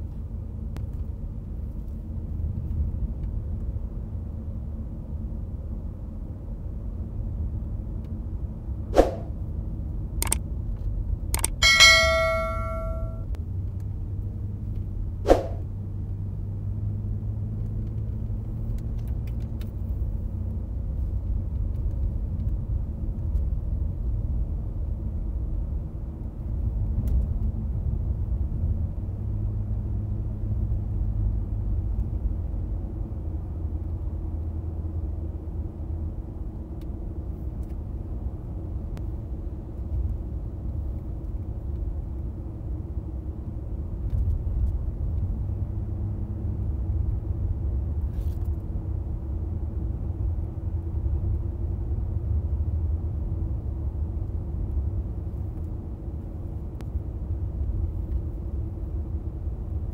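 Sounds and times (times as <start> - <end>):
road and engine rumble in car: 0.0 - 11.7, 13.3 - 59.9
ringing metallic ding: 11.6 - 13.2
sharp knocks: 11.6 - 13.2.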